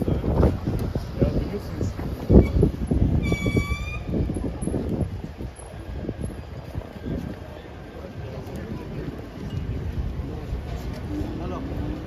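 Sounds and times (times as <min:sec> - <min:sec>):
street traffic noise: 0:00.0 - 0:12.0
wind rumbling on microphone: 0:00.0 - 0:12.0.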